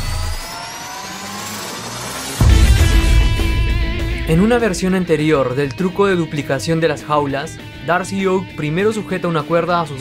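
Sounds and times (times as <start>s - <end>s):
electronic tones gliding upward: 0.1s - 6.3s
deep rumble: 2.2s - 6.4s.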